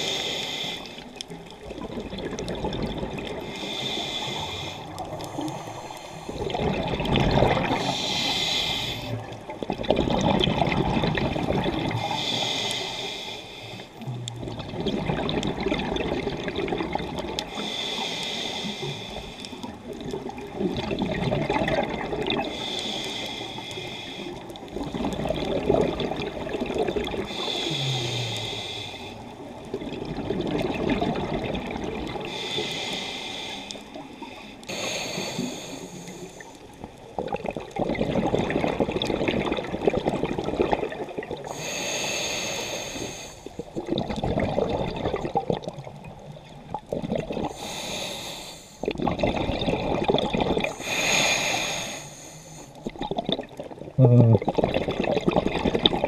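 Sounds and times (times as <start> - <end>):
regulator hissing inhale: 0.0 - 1.1, 3.5 - 6.4, 7.8 - 9.2, 12.0 - 14.0, 17.5 - 19.7, 22.5 - 24.5, 27.3 - 29.3, 32.2 - 36.6, 41.4 - 43.6, 47.5 - 48.9, 50.7 - 52.9
bubbling exhale: 0.0 - 56.0.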